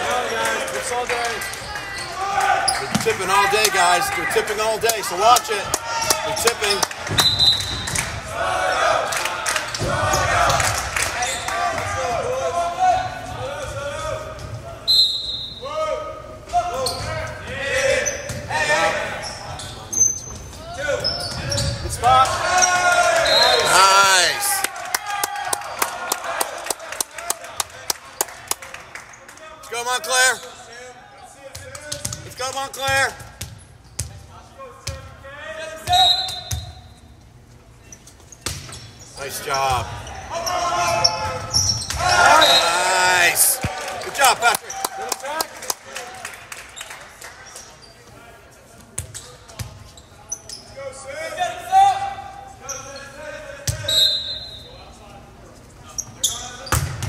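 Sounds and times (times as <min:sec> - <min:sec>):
people shouting and cheering: 0:00.0 - 0:14.8, 0:21.9 - 0:27.4, 0:39.4 - 0:45.5
clapping: 0:24.6 - 0:29.4, 0:43.6 - 0:47.5
volleyball hits: 0:56.7 - 0:57.0.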